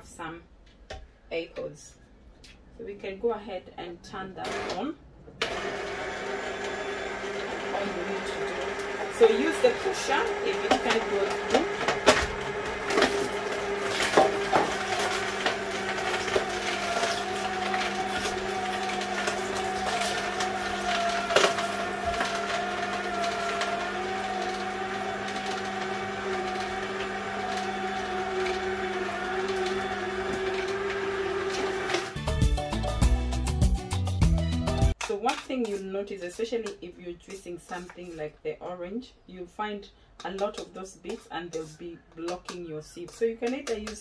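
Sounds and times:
juicer motor hum: 5.4s - 32.4s.

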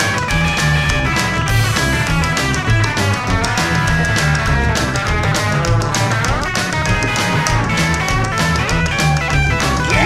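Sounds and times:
electric guitar: 0.0s - 10.0s
steady drum beat: 0.0s - 10.0s
walking bass line: 0.0s - 10.0s.

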